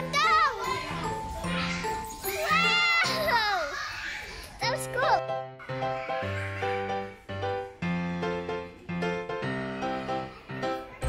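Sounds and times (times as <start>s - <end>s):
background music: 0.0s - 3.7s, 4.6s - 11.0s.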